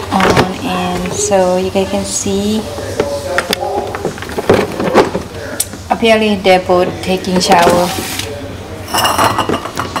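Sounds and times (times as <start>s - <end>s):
hard objects clattering on counter: 8.9s - 10.0s.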